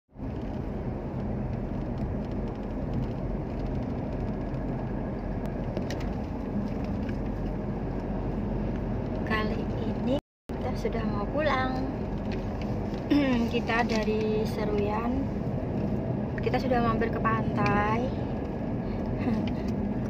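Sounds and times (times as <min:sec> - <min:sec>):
car cabin road and engine noise: 0:00.1 - 0:20.0.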